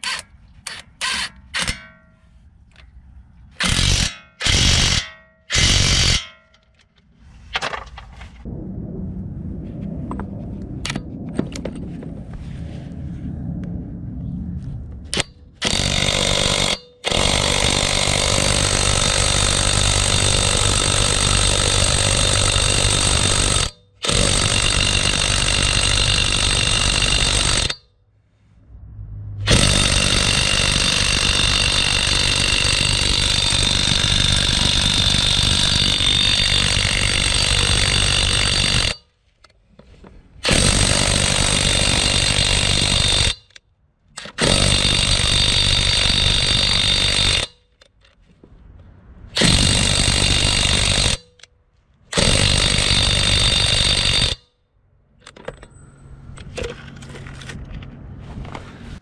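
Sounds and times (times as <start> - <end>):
impact wrench hammering: 3.6 - 6.6.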